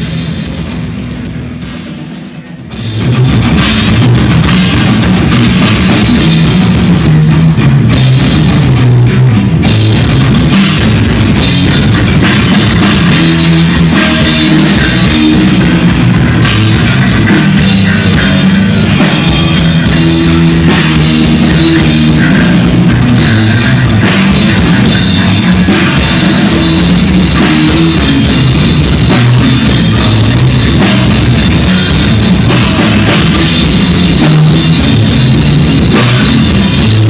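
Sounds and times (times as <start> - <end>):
bass guitar riffing: 0.0 - 37.0
distorted electric guitar: 0.0 - 37.0
drum kit with cymbals: 0.0 - 37.0
heavy metal band playing: 0.0 - 37.0.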